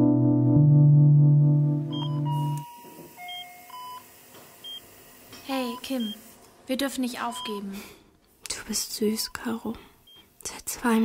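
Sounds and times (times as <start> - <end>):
synthesizer chord: 0.0 - 2.6
longer lower monitor tones: 0.0 - 4.1
patient monitor beeps: 1.9 - 4.8, 5.6 - 6.3, 7.2 - 7.6, 10.1 - 10.3.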